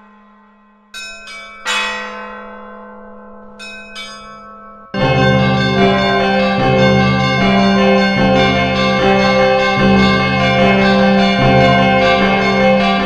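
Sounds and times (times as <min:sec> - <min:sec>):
church bells ringing: 0:00.0 - 0:13.0
loud music with deep drone: 0:05.0 - 0:13.0.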